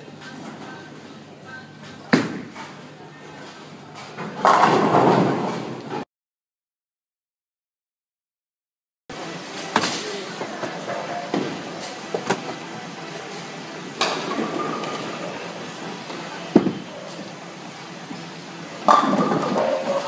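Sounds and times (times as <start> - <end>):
bowling alley din: 4.0 - 6.0, 9.6 - 17.4, 18.2 - 20.0
bowling ball hitting lane: 4.3 - 5.9, 18.8 - 20.0.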